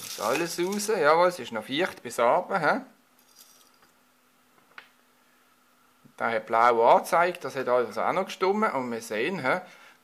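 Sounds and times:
handling rustle: 0.0 - 1.0.

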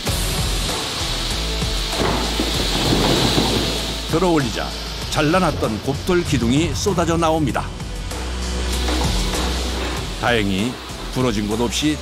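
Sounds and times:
slurry water gushing: 0.8 - 6.9
stone columns rumbling out: 1.6 - 11.8.

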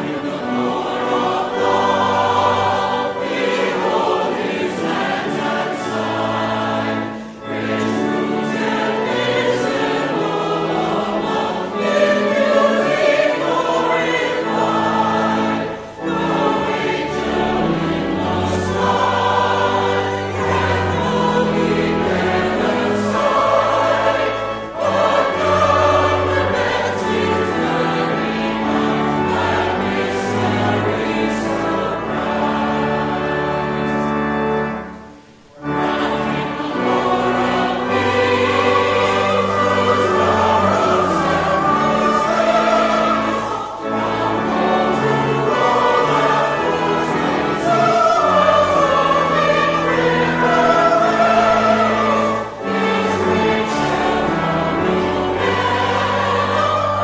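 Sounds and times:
church choir singing: 0.0 - 57.0.

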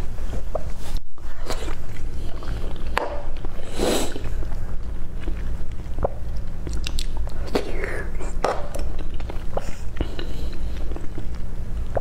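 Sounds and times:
low steady hum: 0.0 - 12.0
mouth chewing clicks and smacks: 1.6 - 12.0.

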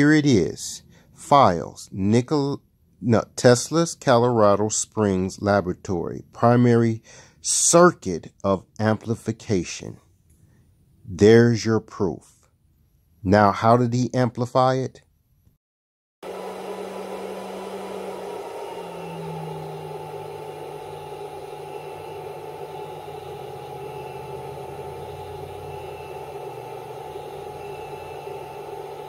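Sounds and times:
inverter electrical hum: 16.2 - 29.0.

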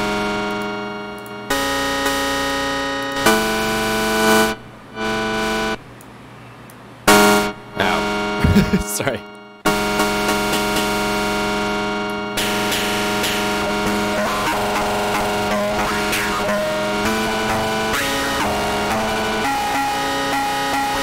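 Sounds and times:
distorted buzzing drone chords: 0.0 - 5.8, 7.1 - 21.0.

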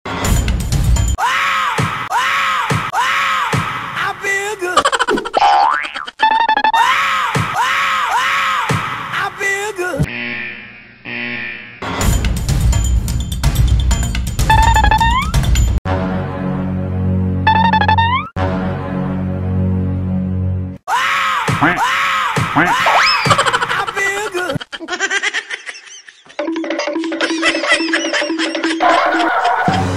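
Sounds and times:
cartoon boing: 17.5 - 18.3
comic boing sound effects: 26.4 - 29.9.

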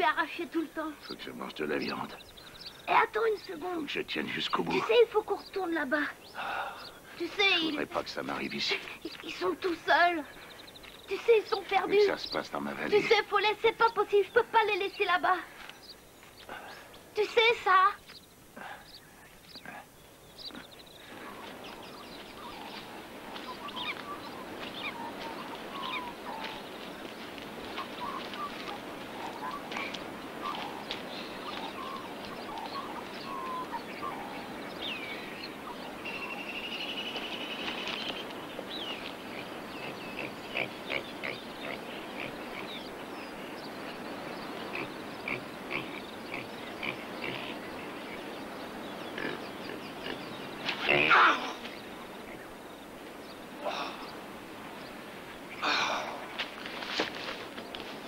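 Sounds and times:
background hiss: 0.0 - 58.0
trilled bird call: 20.3 - 48.3.

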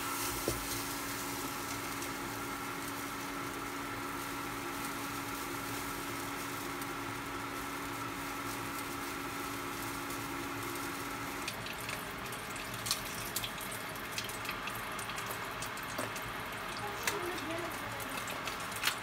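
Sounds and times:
steady hum: 0.0 - 15.6
food sizzling in a wok: 0.0 - 19.0.

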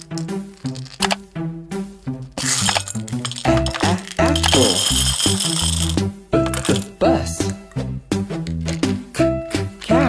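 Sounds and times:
candies clattering into bowl: 0.0 - 1.2, 2.2 - 7.0, 8.4 - 8.9, 9.6 - 10.0
background music: 0.0 - 10.0.

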